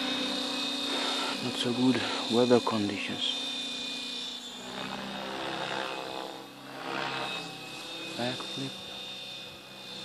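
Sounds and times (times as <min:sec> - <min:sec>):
helicopter rotor whir and motor whine: 0:00.0 - 0:10.0.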